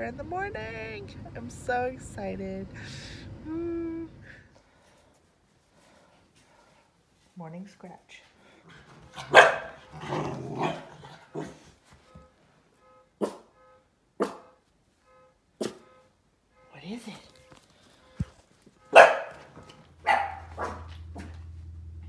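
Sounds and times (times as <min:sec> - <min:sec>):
small dogs barking: 0:08.7 - 0:11.6, 0:13.2 - 0:13.5, 0:14.2 - 0:14.6, 0:18.9 - 0:21.5.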